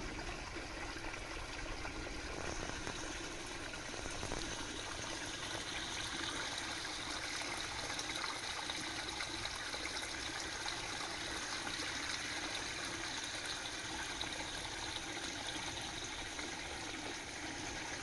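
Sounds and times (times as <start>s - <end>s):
stream flowing: 0.0s - 18.0s.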